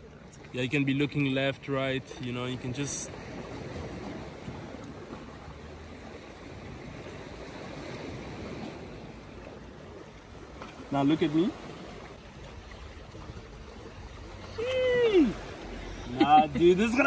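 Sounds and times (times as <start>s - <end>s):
sea water washing against rocks: 2.4s - 17.0s.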